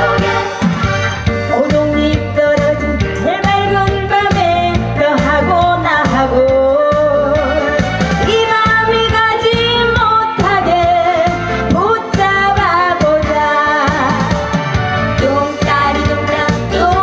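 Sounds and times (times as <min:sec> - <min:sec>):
amplified instrumental accompaniment: 0:00.0 - 0:17.0
woman singing into microphone: 0:01.4 - 0:14.5, 0:15.1 - 0:17.0.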